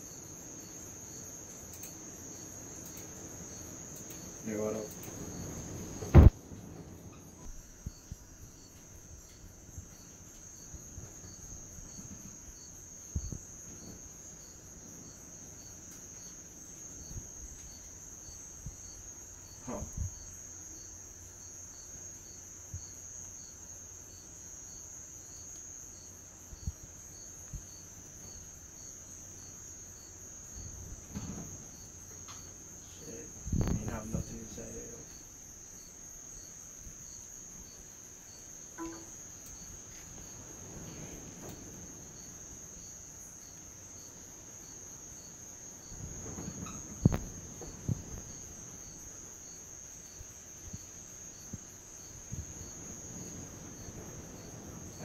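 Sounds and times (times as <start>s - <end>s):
crickets chirping: 0.0s - 55.0s
soft knocks and bumps: 31.0s - 31.8s.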